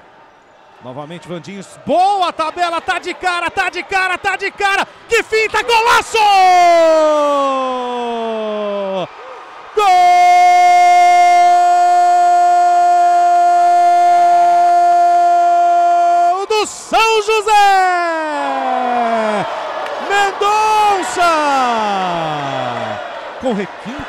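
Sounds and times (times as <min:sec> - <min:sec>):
commentator shouting goal call: 0:01.1 - 0:09.1, 0:09.8 - 0:19.4, 0:20.0 - 0:23.7.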